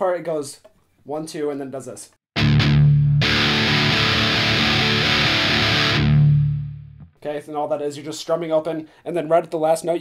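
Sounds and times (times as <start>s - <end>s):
distorted electric guitar strumming: 2.4s - 7.1s.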